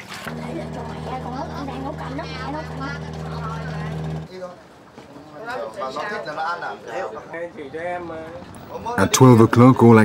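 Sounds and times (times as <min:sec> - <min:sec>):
engine droning: 0:00.2 - 0:04.3
people talking: 0:00.3 - 0:04.4.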